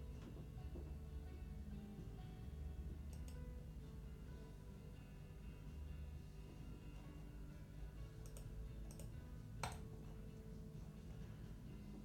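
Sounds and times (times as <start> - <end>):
low steady room hum: 0.0 - 12.0
computer mouse clicks: 3.1 - 3.4, 8.2 - 9.9.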